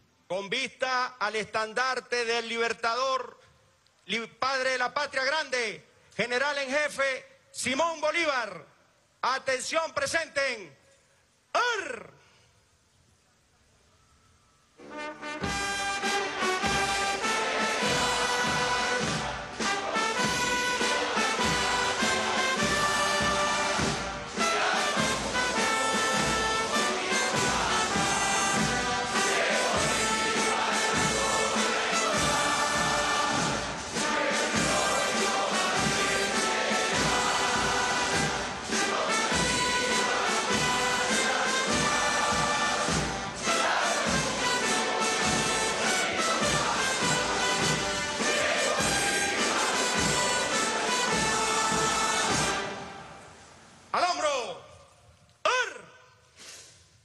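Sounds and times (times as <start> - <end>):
brass band playing a march: 14.8 - 53.4.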